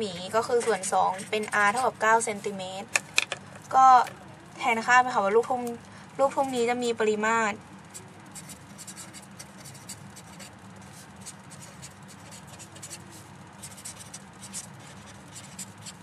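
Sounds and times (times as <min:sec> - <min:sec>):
faint low hum: 0:00.0 - 0:16.0
pen scratching on paper: 0:07.9 - 0:16.0.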